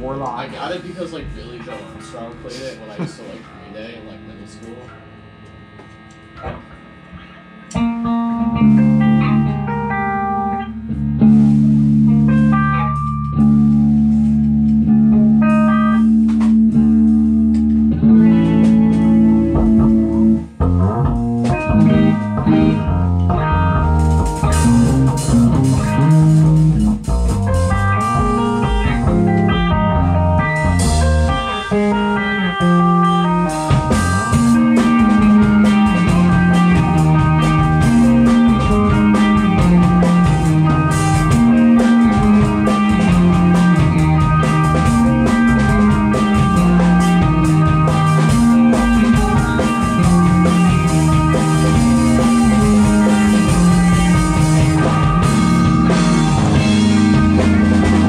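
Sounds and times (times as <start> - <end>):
electric bass: 0.0 - 58.0
electric guitars playing rock: 0.0 - 58.0.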